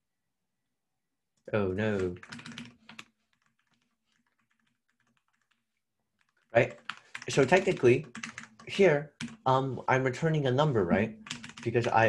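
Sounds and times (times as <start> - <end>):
keyboard keys clicking: 1.9 - 5.6, 6.2 - 9.4, 11.0 - 12.0.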